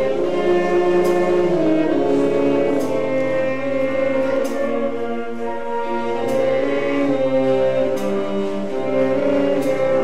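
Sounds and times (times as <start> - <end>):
concert band sustained chords: 0.0 - 10.0.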